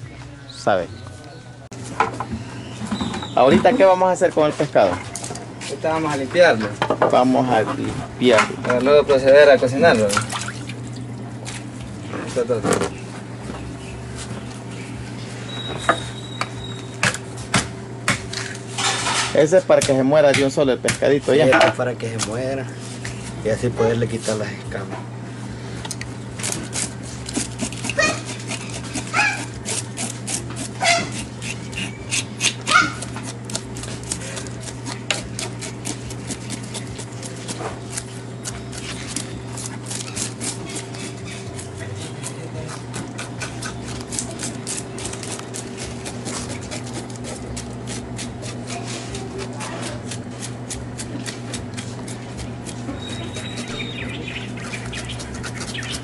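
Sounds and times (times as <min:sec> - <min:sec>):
steady low hum: 0:00.0 - 0:56.0
knife scraping fish scales: 0:26.4 - 0:56.0.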